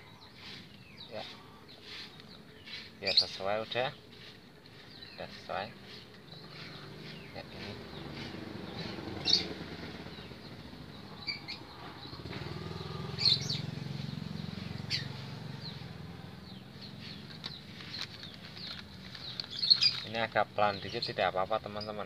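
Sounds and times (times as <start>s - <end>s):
low outdoor hum: 0.0s - 22.0s.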